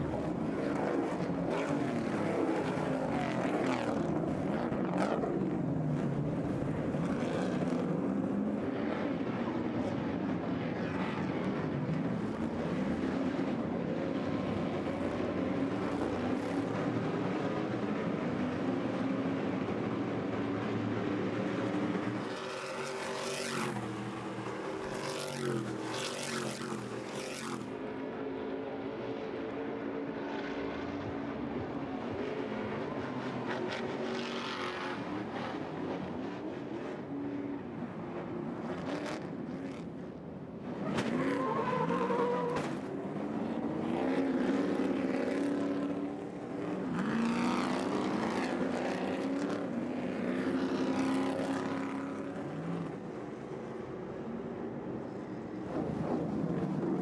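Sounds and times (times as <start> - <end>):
racing truck engines: 0.0 - 57.0.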